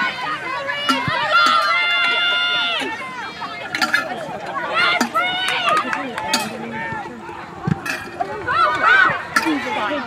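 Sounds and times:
people talking over each other: 0.0 - 10.0.

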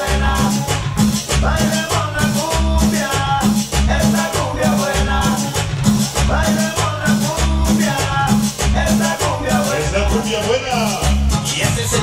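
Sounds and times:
loud cumbia dance music: 0.0 - 12.0.

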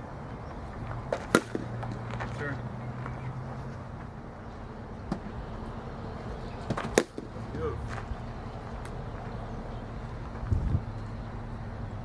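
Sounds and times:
low background hum: 0.0 - 12.0
bat cracking ball: 1.1 - 2.3, 6.6 - 7.4.

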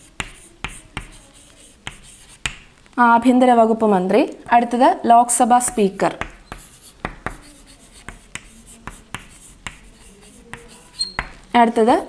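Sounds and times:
chalk scratching on blackboard: 0.0 - 2.8, 5.6 - 11.5
chalk tapping on board: 0.0 - 2.8, 5.6 - 11.5.

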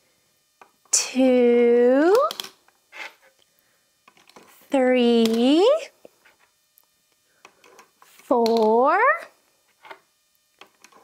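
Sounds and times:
plastic toy counters clicking: 2.1 - 2.6, 8.4 - 8.8.

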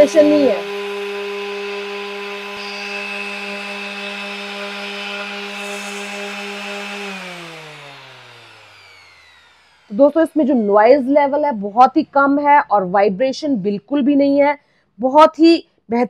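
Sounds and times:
orbital sander motor running: 0.0 - 12.6
sander winding down: 0.0 - 12.6.

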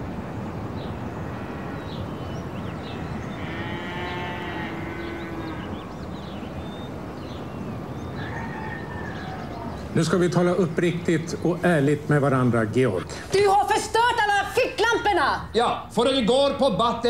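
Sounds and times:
outdoor background noise: 0.0 - 17.0
farm animal long call: 3.3 - 5.8
bird chirps: 4.8 - 11.6.

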